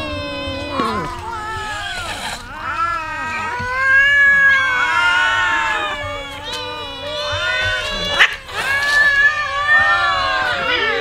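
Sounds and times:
many cats meowing: 0.0s - 11.0s.

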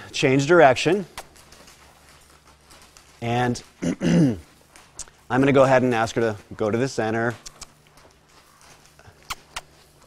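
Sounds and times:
horse footfalls on sand: 0.2s - 10.0s.

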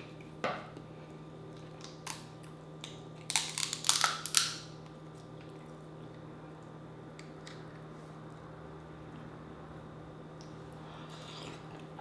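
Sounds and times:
shellfish shell cracking: 1.8s - 4.7s.

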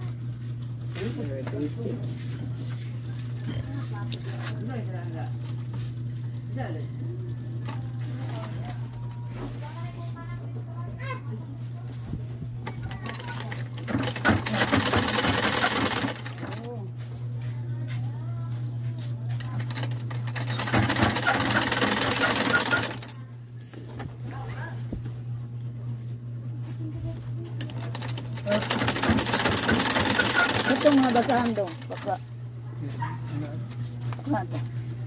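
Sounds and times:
sewing machine stitching: 12.9s - 16.8s, 19.4s - 23.2s, 27.6s - 32.2s.

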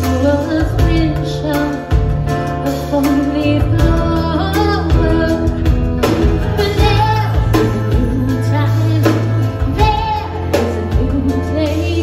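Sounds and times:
bass guitar: 0.0s - 12.0s
keyboard: 0.0s - 12.0s
steady drum beat: 0.0s - 12.0s
woman singing: 0.0s - 12.0s.

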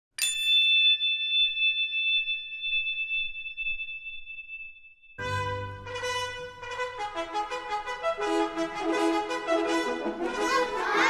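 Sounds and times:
bright bell ding: 0.2s - 5.4s.

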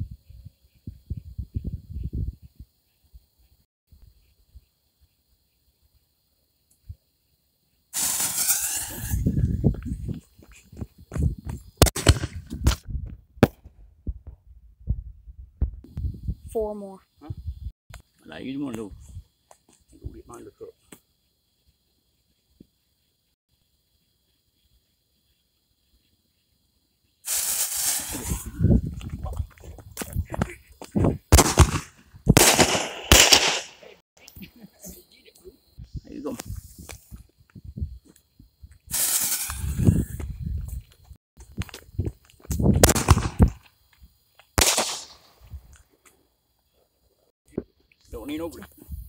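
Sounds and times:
firework shots and bangs: 8.0s - 9.3s, 11.8s - 12.8s, 31.3s - 33.9s, 42.8s - 43.6s, 44.6s - 45.4s
firework hiss: 8.0s - 9.7s, 27.2s - 29.0s, 31.3s - 34.0s, 36.0s - 37.2s, 38.8s - 40.3s, 42.6s - 43.6s, 44.6s - 45.6s.

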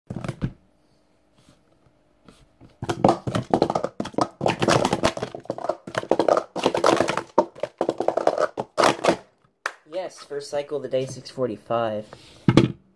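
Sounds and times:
plastic cups clattering: 2.8s - 9.3s.

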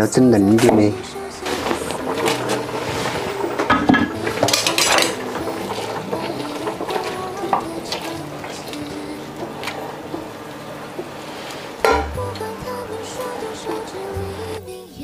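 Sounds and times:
background music: 0.0s - 15.0s
utensils clinking on metal pot: 0.6s - 14.6s.

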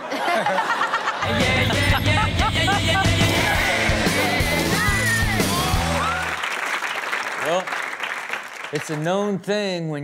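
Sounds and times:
studio audience applauding: 3.0s - 9.4s.

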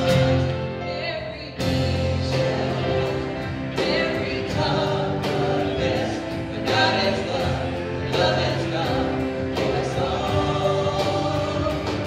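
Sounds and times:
acoustic guitar: 0.0s - 12.0s
keyboard: 0.0s - 12.0s
people singing together: 0.0s - 12.0s.

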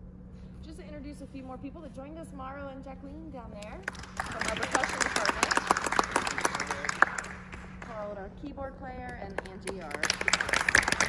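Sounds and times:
audience applause: 3.9s - 7.9s, 9.8s - 11.0s.

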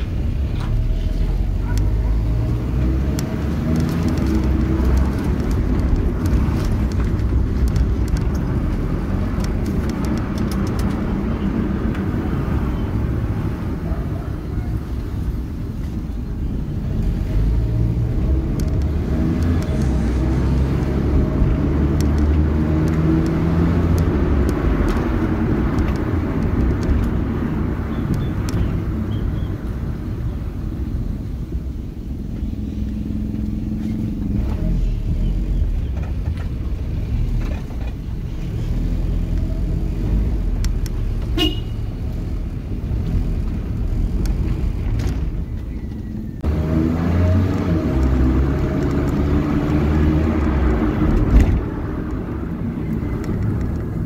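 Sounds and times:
car engine and road noise: 0.0s - 54.0s.

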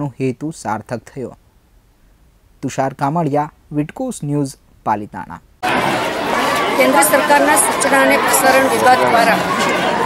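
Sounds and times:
crowd chattering: 5.6s - 10.0s.

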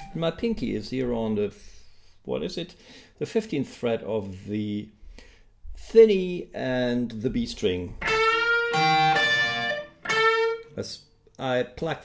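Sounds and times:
electric guitar lick with bends: 8.0s - 10.8s.

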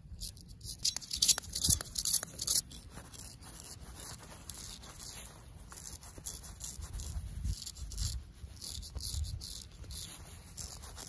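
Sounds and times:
razor scraping stubble: 0.1s - 11.0s.

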